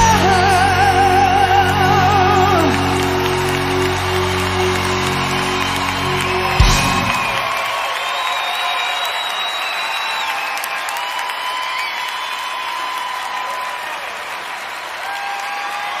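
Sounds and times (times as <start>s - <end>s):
audience applauding: 0.0s - 16.0s.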